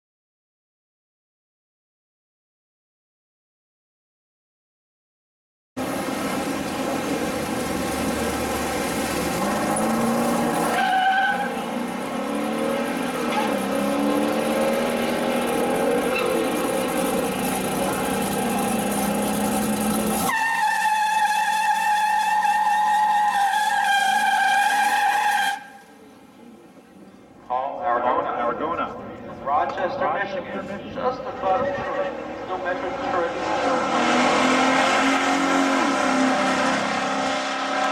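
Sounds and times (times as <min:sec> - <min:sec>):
loud car engine running: 0:05.8 - 0:20.3
high-pitched tire squeal: 0:08.0 - 0:26.0, 0:33.2 - 0:37.9.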